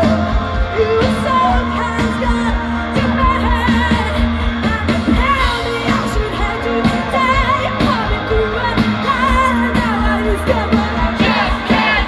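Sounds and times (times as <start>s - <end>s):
live pop band playing: 0.0s - 12.0s.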